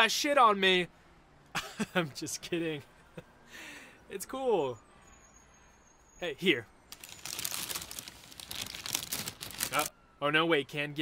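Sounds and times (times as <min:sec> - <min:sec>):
paper bag crinkling: 0:06.9 - 0:09.9.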